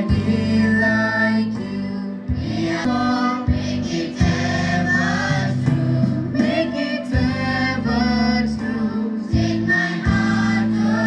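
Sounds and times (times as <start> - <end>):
low accompaniment: 0.0 - 11.0
mixed choir singing: 0.0 - 11.0.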